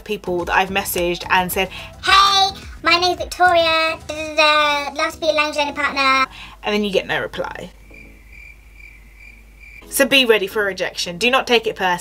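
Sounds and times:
crickets chirping: 7.7 - 9.9.

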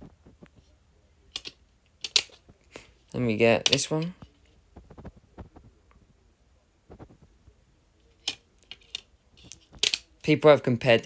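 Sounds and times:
sharp plastic disc clicks: 1.3 - 2.4, 8.2 - 10.1.

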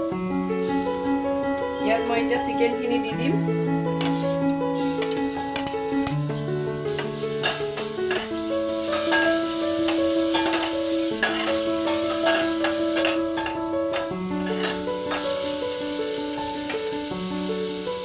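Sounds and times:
chicken frying and sizzling: 0.0 - 18.0
slow background music: 0.0 - 18.0
ladle scraping a metal pot: 6.9 - 15.4.

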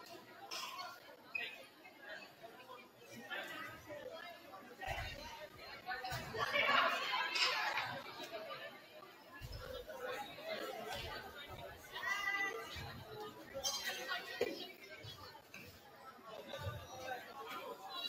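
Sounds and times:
echoing chatter of people: 0.0 - 18.0.

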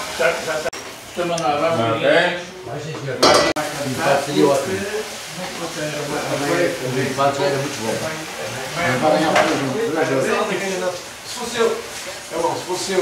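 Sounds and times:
vegetables sizzling: 0.0 - 13.0
people talking indistinctly: 0.2 - 13.0.

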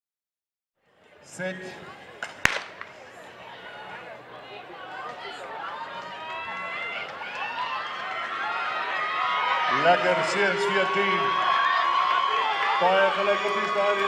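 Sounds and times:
spectators shouting and cheering: 1.3 - 14.0
starter's gun firing: 2.4 - 2.8.

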